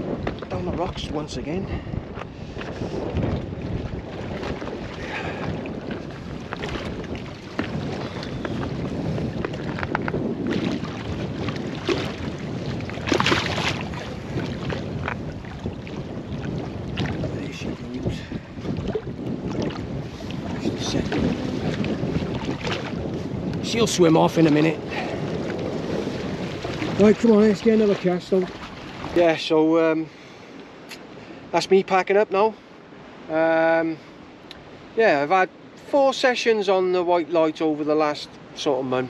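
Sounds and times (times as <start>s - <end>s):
wind buffeting microphone: 0.0s - 39.0s
water splashing against rocks: 2.2s - 29.6s.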